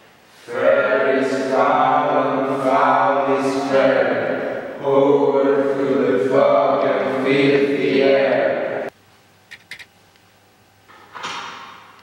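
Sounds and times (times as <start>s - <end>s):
voices chanting together: 0.4s - 8.9s.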